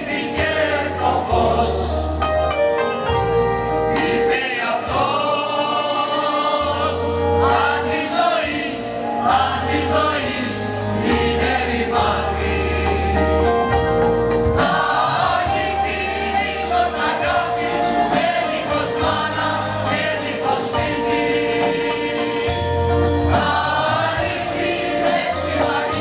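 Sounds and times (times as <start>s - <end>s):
mixed choir singing: 0.0s - 2.2s, 3.8s - 13.8s, 14.5s - 26.0s
accordion: 0.0s - 26.0s
keyboard accompaniment: 0.0s - 26.0s.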